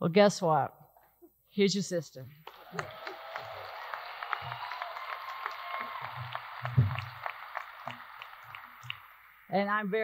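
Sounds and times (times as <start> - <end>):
audience applauding: 2.4 - 10.0.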